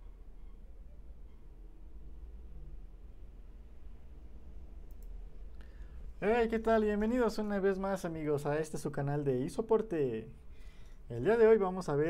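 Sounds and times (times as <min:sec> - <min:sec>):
low electrical hum: 0:00.0 - 0:12.0
faint sharp clicks: 0:04.8 - 0:05.8.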